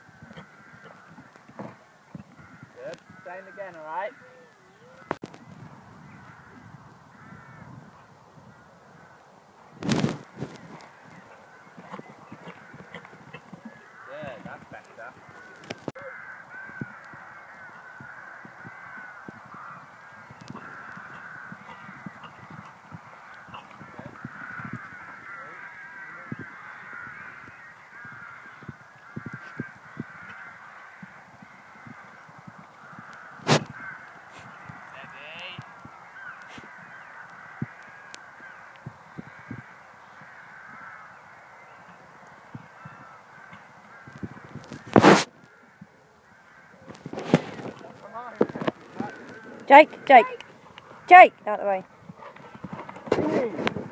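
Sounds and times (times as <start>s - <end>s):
birds calling: 0.0s - 53.9s
crow-like calls: 0.0s - 53.9s.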